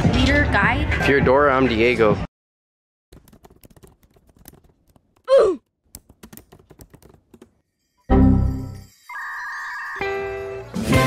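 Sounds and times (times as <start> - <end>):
keyboard typing clicks: 3.2 - 5.2, 5.9 - 7.6.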